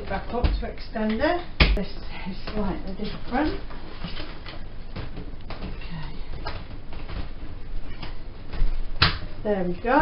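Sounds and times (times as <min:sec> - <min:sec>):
fabric rustling: 0:02.3 - 0:10.0.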